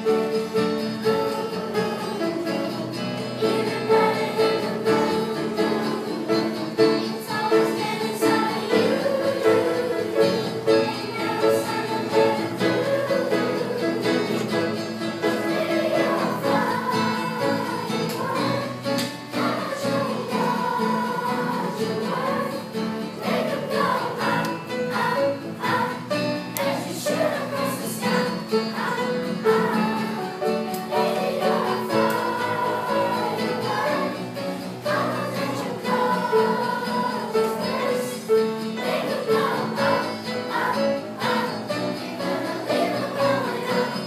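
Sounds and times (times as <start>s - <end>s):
children's choir singing: 0.0s - 44.0s
guitar accompaniment: 0.0s - 44.0s.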